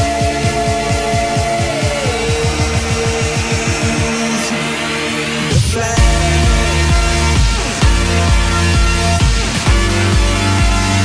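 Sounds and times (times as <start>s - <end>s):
falling bass sweeps: 0.0s - 11.0s
held synth notes: 0.0s - 11.0s.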